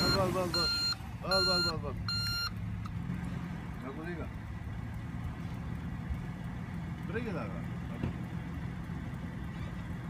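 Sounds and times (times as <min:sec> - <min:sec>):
reversing beep: 0:00.0 - 0:02.6
suv engine idling: 0:00.0 - 0:10.0.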